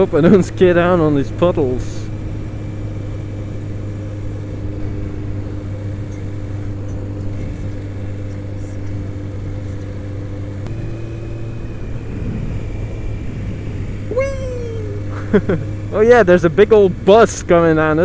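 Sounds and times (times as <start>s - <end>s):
motorcycle engine running: 0.0s - 18.0s
rush of noise: 2.0s - 16.4s.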